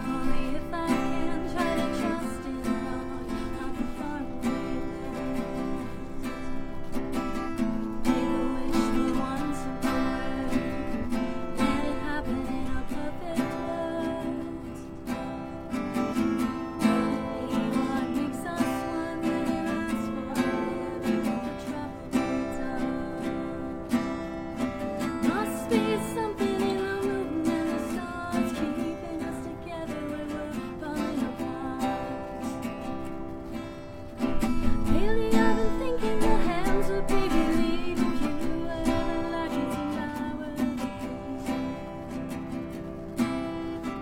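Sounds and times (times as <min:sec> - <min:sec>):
acoustic guitar strumming: 0:00.0 - 0:44.0.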